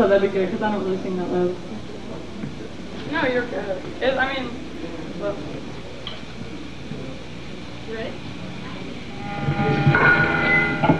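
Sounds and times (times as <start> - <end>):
room noise with faint voices: 0.0 - 10.9
electric guitar chord ringing: 8.6 - 10.9.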